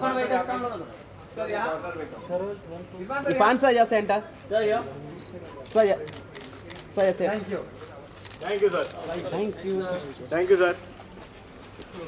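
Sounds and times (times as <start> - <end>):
camera shutters clicking: 5.6 - 7.1, 8.2 - 10.2.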